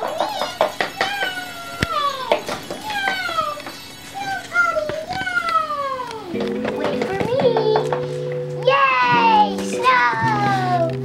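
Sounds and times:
plastic toys clicking: 0:00.0 - 0:11.0.

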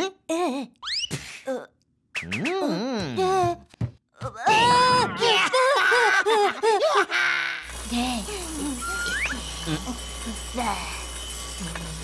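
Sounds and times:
cartoon character crying out: 0:04.4 - 0:07.7.

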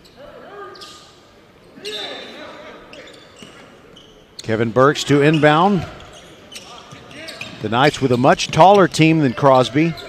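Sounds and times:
distant voices of players and crowd: 0:00.0 - 0:10.0
short high squeaks: 0:02.9 - 0:04.6.

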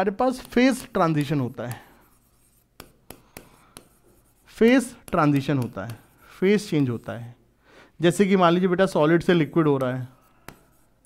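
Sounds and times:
pen strokes on display board: 0:00.3 - 0:07.4, 0:09.2 - 0:11.0
pen tapping on display board: 0:02.8 - 0:04.0, 0:09.8 - 0:10.7.

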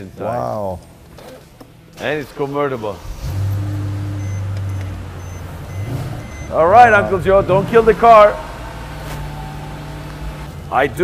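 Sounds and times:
car engine starting and running: 0:00.9 - 0:11.0.

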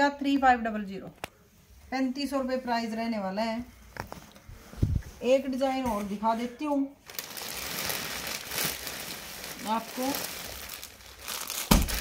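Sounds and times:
plastic packaging crinkling: 0:07.0 - 0:12.0
packet thumping down: 0:11.6 - 0:12.0.

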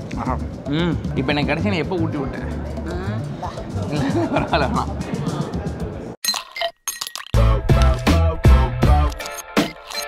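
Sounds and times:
background music: 0:00.0 - 0:06.2, 0:07.3 - 0:10.0.

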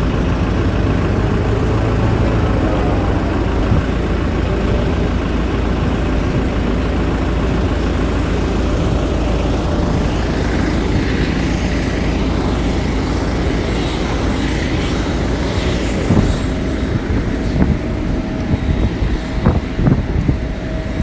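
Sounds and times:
jet aircraft rumble and hiss: 0:00.0 - 0:21.0.

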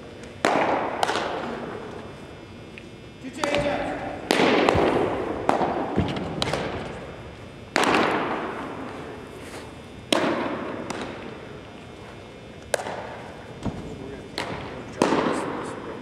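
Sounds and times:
baseball popping into mitt: 0:03.4 - 0:07.0, 0:12.6 - 0:15.4.

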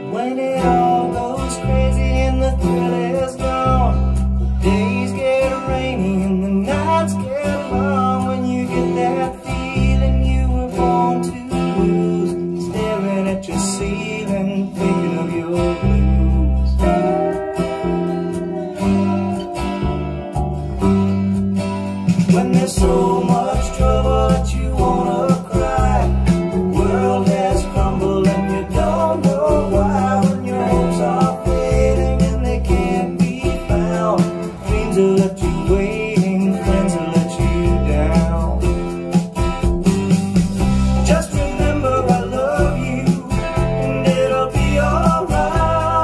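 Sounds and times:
song with strummed acoustic guitar: 0:00.0 - 0:46.0
deep bass notes: 0:00.6 - 0:13.0, 0:13.6 - 0:46.0.

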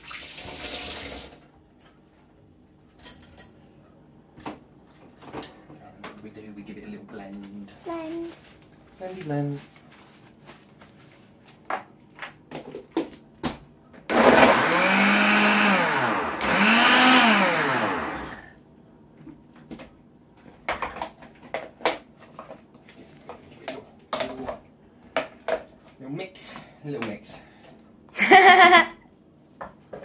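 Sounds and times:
blender motor bursts: 0:14.1 - 0:18.5.

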